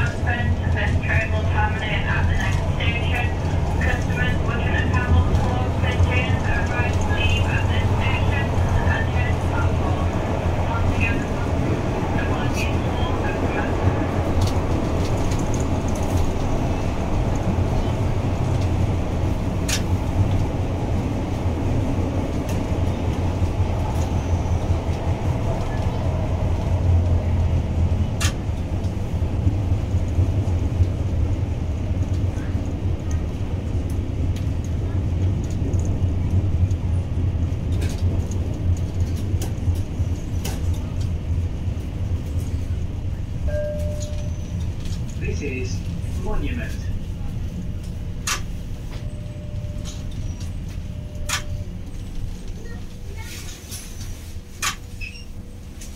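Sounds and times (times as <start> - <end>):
train wheels rumbling: 0.0 - 55.9.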